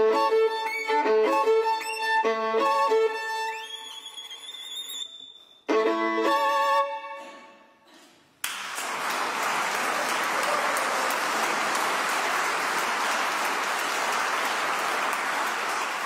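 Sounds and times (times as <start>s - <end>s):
audience applauding: 8.4s - 16.0s.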